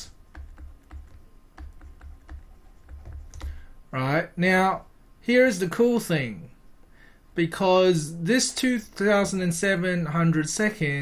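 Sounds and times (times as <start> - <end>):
stylus tapping on graphics tablet: 0.0 - 3.6.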